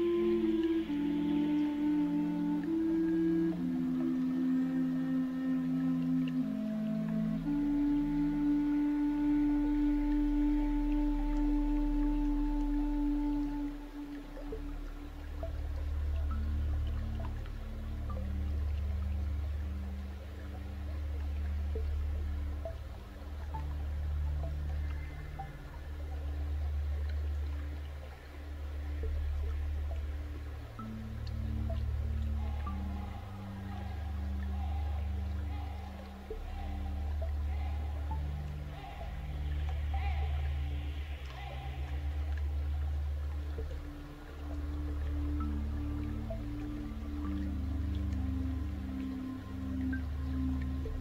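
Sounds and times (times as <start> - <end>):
ambient relaxation music: 0.0 - 51.0
deep drone: 0.0 - 51.0.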